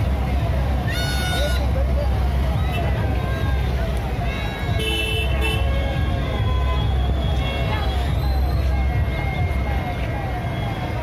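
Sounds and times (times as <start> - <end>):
crowd chatter: 0.0 - 11.0
vehicle engines rumbling: 0.0 - 11.0
vehicle horn: 4.4 - 8.0.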